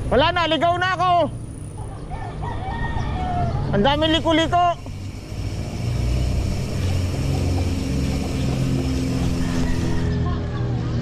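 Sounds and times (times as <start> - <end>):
rooster crowing: 2.1 - 3.8, 7.2 - 10.5.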